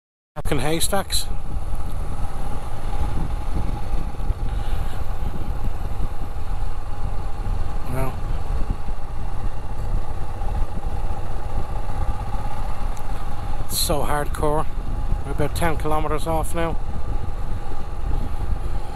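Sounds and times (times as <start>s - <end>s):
motorcycle engine running: 0.4s - 18.9s
wind rumble on microphone: 0.4s - 18.9s.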